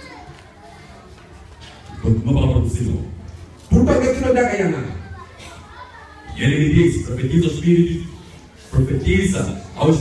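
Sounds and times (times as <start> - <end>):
faint voices: 0.0 - 10.0
man speaking through microphone: 1.9 - 5.2, 6.3 - 10.0.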